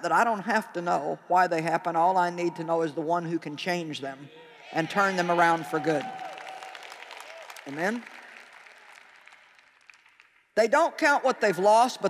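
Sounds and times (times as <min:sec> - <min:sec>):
audience applause: 0:04.8 - 0:10.4.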